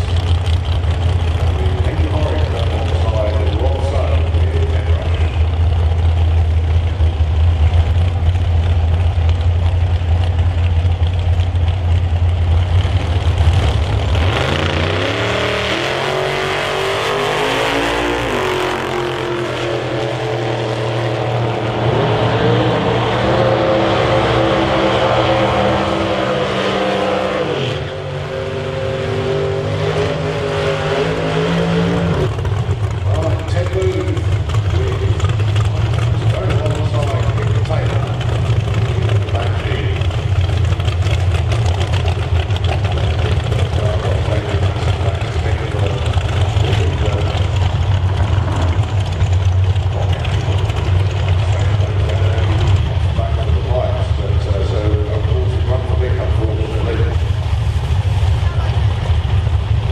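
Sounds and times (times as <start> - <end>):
drag car engine idling: 0.0 - 26.8, 27.8 - 59.9
drag car accelerating hard: 0.0 - 59.9.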